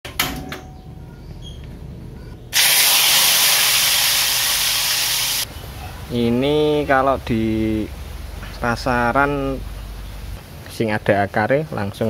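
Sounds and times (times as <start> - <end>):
gas stove hissing: 2.5 - 5.5.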